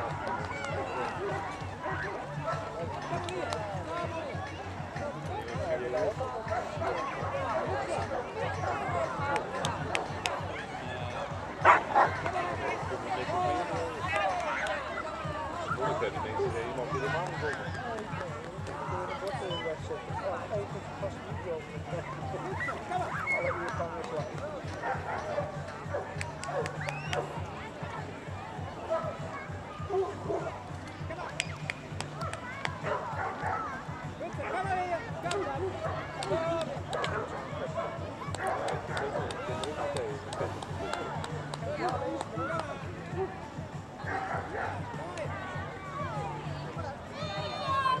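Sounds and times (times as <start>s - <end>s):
chatter of onlookers: 0.0s - 48.0s.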